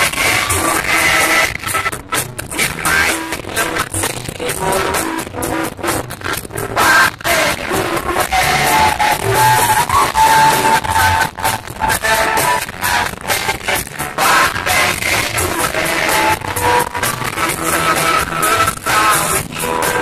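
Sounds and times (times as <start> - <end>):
electric guitar: 0.0 - 20.0
keyboard: 0.0 - 20.0
live band playing: 0.0 - 20.0
steady drum beat: 0.0 - 20.0.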